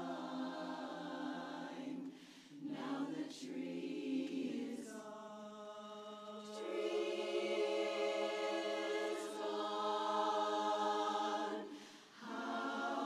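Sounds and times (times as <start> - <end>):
women's chorus singing a cappella: 0.0 - 13.0.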